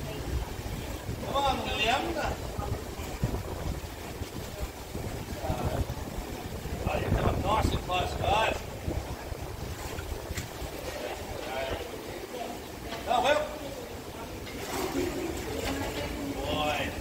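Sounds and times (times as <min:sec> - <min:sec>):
wind buffeting microphone: 0:00.0 - 0:12.2, 0:14.6 - 0:17.0.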